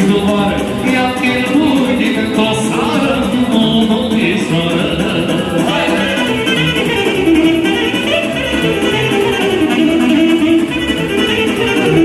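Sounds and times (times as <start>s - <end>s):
electronic keyboard accompaniment: 0.0s - 12.0s
saxophone melody: 0.2s - 12.0s
steady dance beat: 1.8s - 9.0s.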